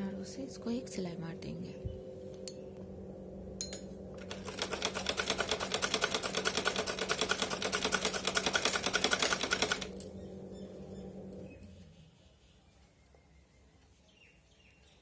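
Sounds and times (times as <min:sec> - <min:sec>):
sewing machine stitching: 0:04.2 - 0:10.1.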